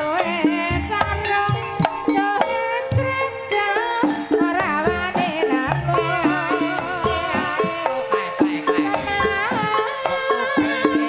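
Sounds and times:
gamelan music: 0:00.0 - 0:11.0
person singing ornamented vocal: 0:00.0 - 0:11.0
hand drum strokes: 0:04.0 - 0:11.0.

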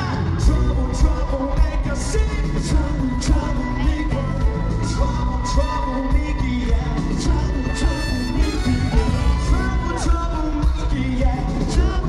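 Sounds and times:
live pop music over loudspeakers: 0:00.0 - 0:12.0.

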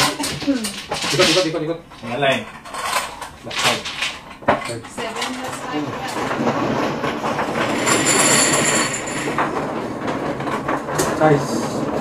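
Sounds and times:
plastic tiles rattling in machine: 0:00.0 - 0:12.0.

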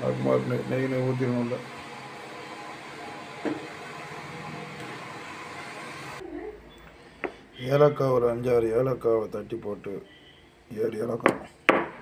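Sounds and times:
gas stove burner hissing: 0:00.0 - 0:06.2.

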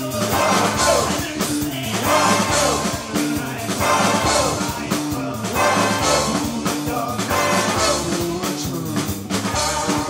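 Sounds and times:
trumpet: 0:00.0 - 0:08.5, 0:09.3 - 0:10.0
bass guitar: 0:00.0 - 0:10.0
drum kit: 0:00.0 - 0:10.0
electric guitar: 0:00.0 - 0:10.0
man singing lead vocal: 0:00.0 - 0:10.0
saxophone: 0:00.0 - 0:10.0.

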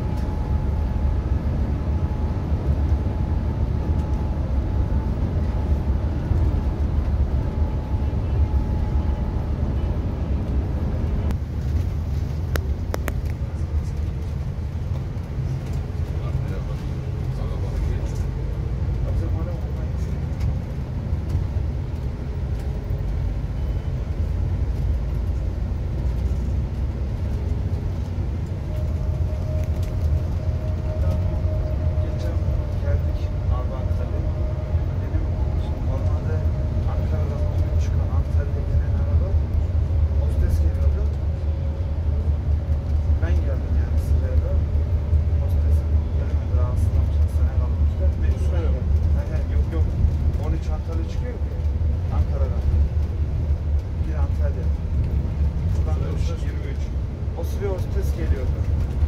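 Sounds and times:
faint whine: 0:00.0 - 0:18.4, 0:27.3 - 0:49.7
diesel engine and road rumble: 0:00.0 - 0:59.0.

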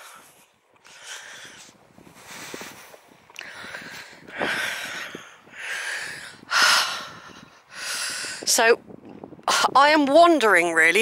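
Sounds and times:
person breathing in and out: 0:00.0 - 0:08.5.

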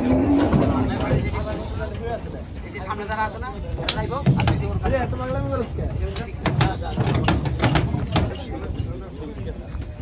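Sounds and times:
hooves knocking on wooden boards: 0:03.8 - 0:09.0.

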